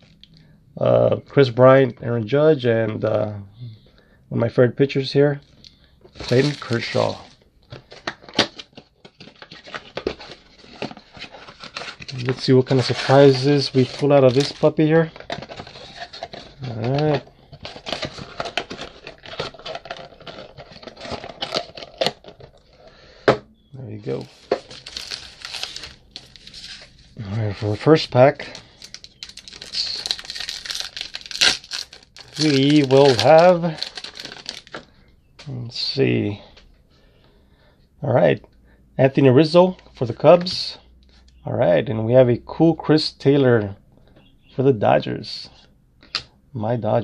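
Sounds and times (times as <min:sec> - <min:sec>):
wrapper crinkling: 0:06.1 - 0:22.8, 0:24.0 - 0:34.9
wrapper ripping: 0:06.2 - 0:22.7, 0:24.0 - 0:34.8.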